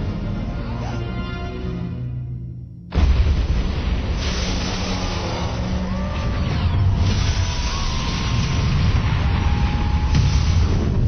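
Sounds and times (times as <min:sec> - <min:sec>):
explosion roar: 0:02.9 - 0:11.0.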